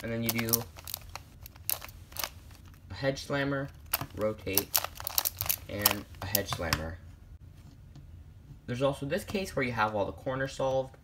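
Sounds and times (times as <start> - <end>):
plastic puzzle clicking: 0.2 - 2.4, 3.8 - 6.6.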